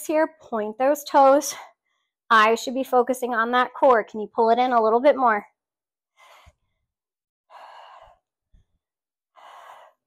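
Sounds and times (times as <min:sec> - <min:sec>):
woman breathing forcefully: 0:06.1 - 0:10.0.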